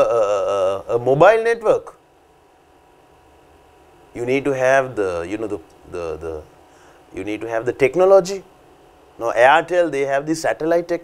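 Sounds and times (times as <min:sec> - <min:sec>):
faint low hum and hiss: 0:00.0 - 0:11.0.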